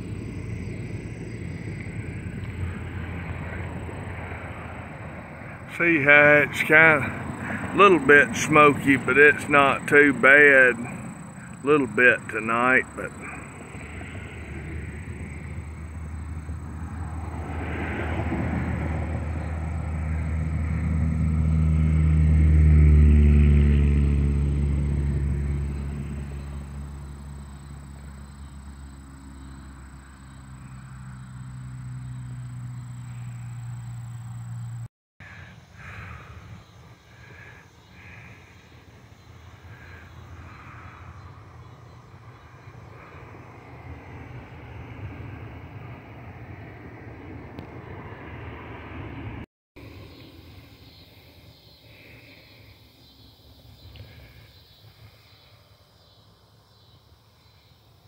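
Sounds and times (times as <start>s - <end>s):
vehicle engine passing by: 0.0s - 55.5s
outdoor background noise: 0.0s - 58.0s.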